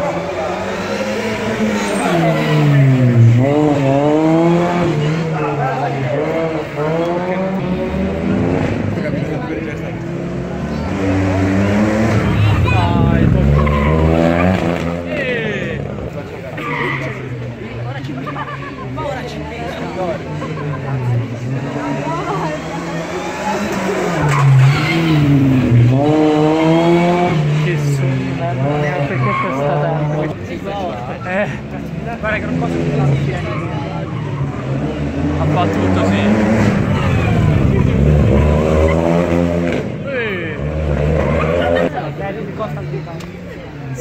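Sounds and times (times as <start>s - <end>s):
rally car engine revving: 0.0s - 44.0s
voices: 0.0s - 44.0s.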